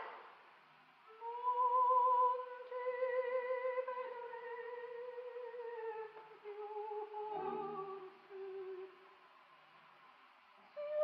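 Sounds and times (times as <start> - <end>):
faint recording hiss: 0.0 - 11.0.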